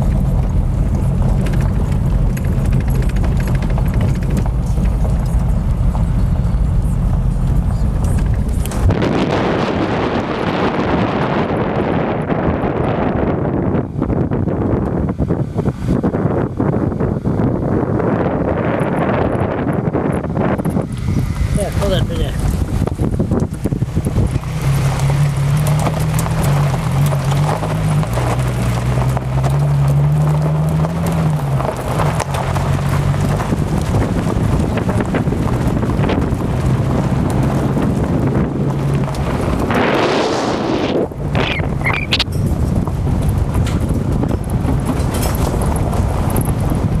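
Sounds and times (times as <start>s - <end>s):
low hum: 0.0s - 47.0s
wind buffeting microphone: 0.0s - 47.0s.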